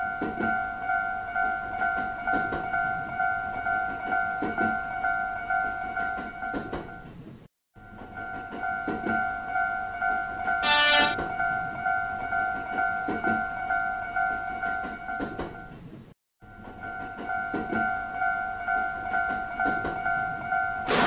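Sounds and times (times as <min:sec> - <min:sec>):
railroad crossing bell ringing: 0:00.0 - 0:07.0, 0:07.8 - 0:15.7, 0:16.4 - 0:21.0
train horn blast: 0:10.6 - 0:11.2.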